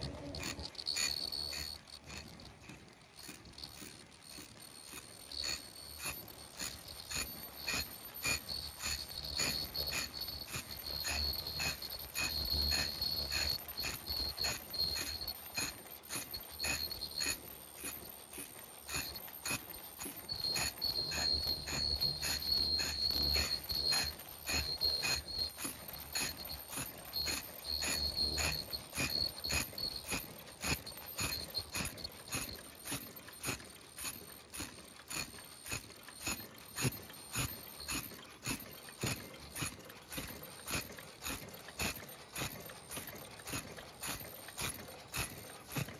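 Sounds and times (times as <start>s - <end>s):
high-pitched whine: 0.0s - 2.3s, 3.2s - 45.9s
machines clicking rhythmically: 0.0s - 45.9s.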